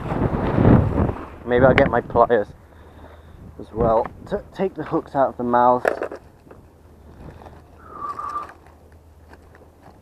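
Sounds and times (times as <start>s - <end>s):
wind rumble on microphone: 0.0s - 4.7s, 6.4s - 8.6s
thin whistle-like tone: 7.8s - 8.5s.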